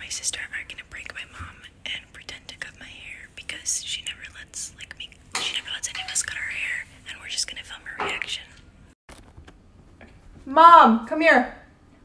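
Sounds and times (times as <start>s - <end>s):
woman whispering: 0.0s - 8.6s.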